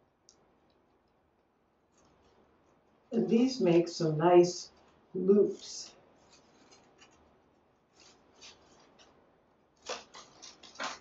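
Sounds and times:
leaves and decorative material rustling: 1.8s - 11.0s
sharp crackle: 9.8s - 11.0s.

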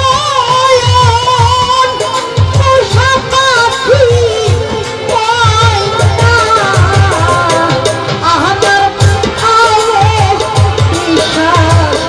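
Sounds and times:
steady low drum beat: 0.0s - 12.0s
woman singing into a microphone: 0.0s - 12.0s.

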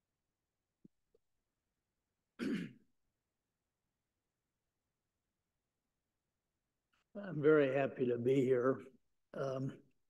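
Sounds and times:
person clearing throat: 2.4s - 2.8s.

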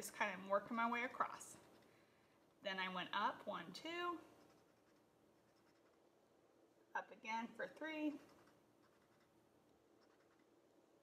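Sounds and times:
marker colouring on paper: 4.2s - 6.2s, 8.1s - 10.6s.

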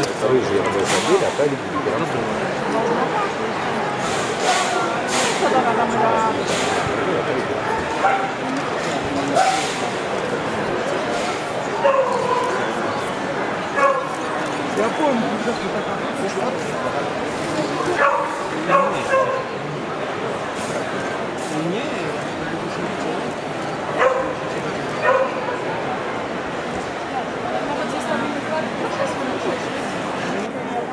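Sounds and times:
crowd chatter: 0.0s - 30.9s
dog barking and yelping: 11.8s - 12.5s, 13.8s - 14.1s, 18.0s - 19.5s, 24.0s - 24.4s, 25.0s - 25.4s.

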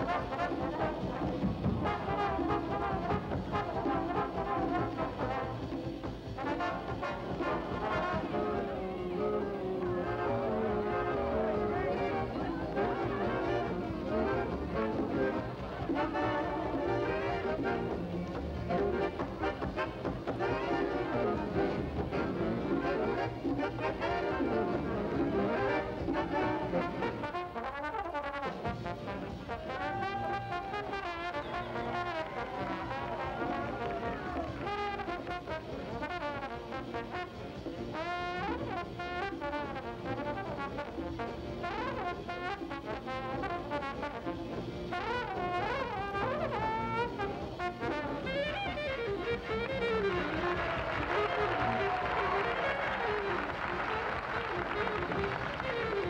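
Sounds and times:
big band jazz over loudspeakers: 0.0s - 56.0s
trombone solo: 0.0s - 56.0s.

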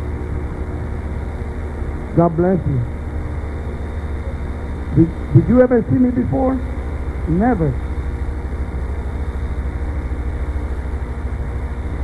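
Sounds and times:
even hiss: 0.0s - 12.0s
low electrical hum: 0.0s - 12.0s.

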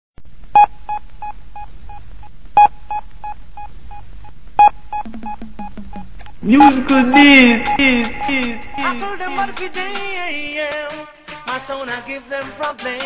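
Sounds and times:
electronic beeps with echo: 4.6s - 10.5s
low bass note: 5.0s - 10.5s.

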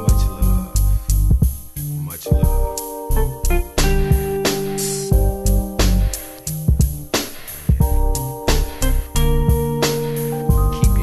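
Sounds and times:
hip-hop instrumental beat: 0.0s - 11.0s.

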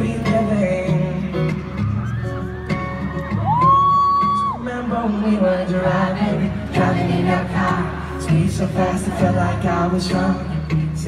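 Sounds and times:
acoustic guitar through speakers: 0.0s - 11.0s.

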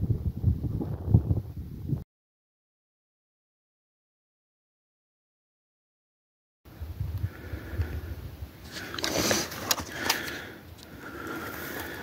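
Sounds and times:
wind rumble on microphone: 0.0s - 2.0s, 6.7s - 8.7s
person breathing: 7.2s - 12.0s.

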